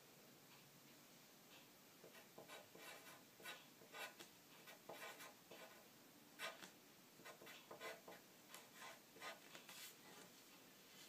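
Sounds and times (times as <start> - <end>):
pencil scratching on paper: 2.0 - 5.8, 6.4 - 10.3.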